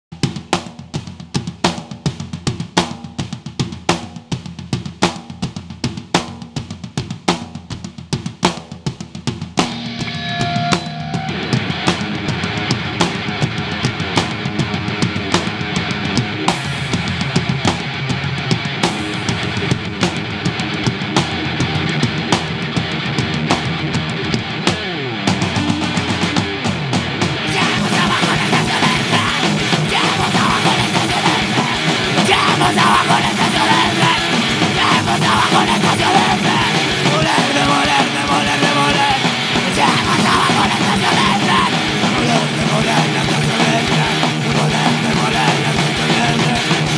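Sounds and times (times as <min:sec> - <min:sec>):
drum kit beat: 0:00.1 - 0:46.9
heavy rock band playing: 0:00.1 - 0:46.9.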